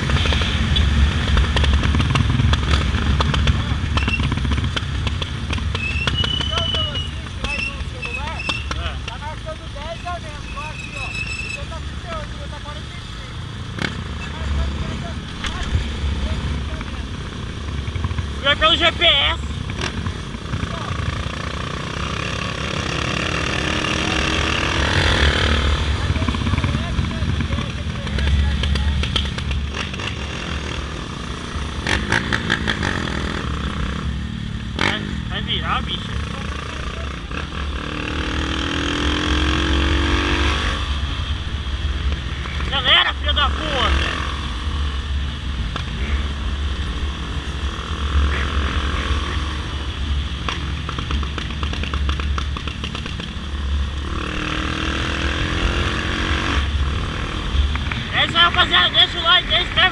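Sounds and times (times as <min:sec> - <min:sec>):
motorcycle engine running: 0:00.0 - 0:40.7, 0:43.4 - 0:59.9.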